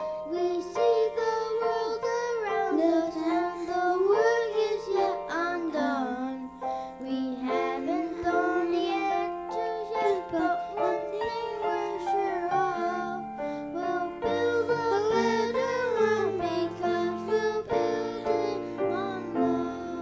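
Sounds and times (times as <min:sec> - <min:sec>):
instrumental accompaniment: 0:06.2 - 0:20.0
boys singing: 0:07.1 - 0:20.0.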